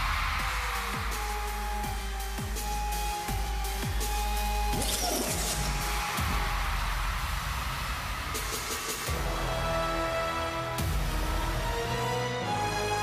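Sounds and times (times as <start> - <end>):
electronic dance music: 0.0 - 13.0.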